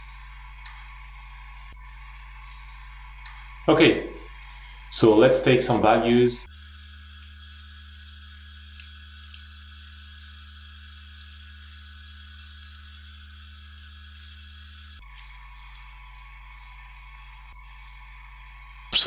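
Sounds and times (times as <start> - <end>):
computer mouse and key clicks: 0.0 - 0.8, 2.4 - 3.4, 4.4 - 4.6, 6.5 - 9.6, 10.9 - 17.1
electrical hum and hiss: 0.0 - 19.0.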